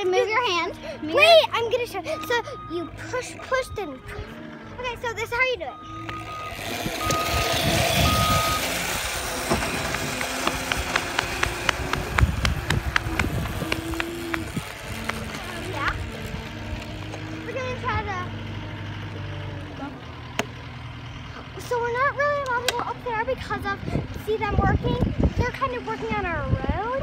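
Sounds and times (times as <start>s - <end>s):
heavy vehicle engine running: 0.0s - 27.0s
reversing alarm beeping: 1.1s - 10.0s.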